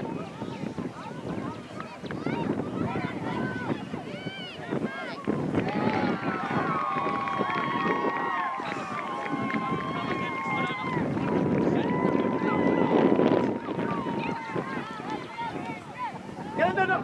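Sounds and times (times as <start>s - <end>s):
many voices shouting and calling: 0.0s - 17.0s.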